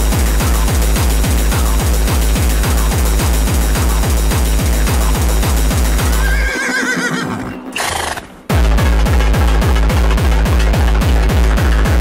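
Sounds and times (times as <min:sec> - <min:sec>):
kick drum: 0:00.0 - 0:06.2, 0:08.5 - 0:12.0
hardcore dance music: 0:00.0 - 0:06.4, 0:08.2 - 0:12.0
horse whinny: 0:06.2 - 0:08.3.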